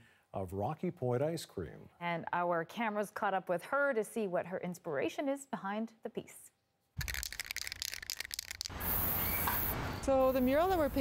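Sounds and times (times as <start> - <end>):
spray can ball rattling: 7.0 - 9.7
spray paint hissing: 7.0 - 11.0.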